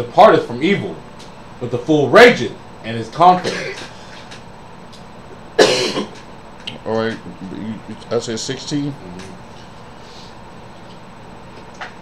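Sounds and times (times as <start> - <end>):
short cough: 3.4 - 3.9, 5.6 - 6.2.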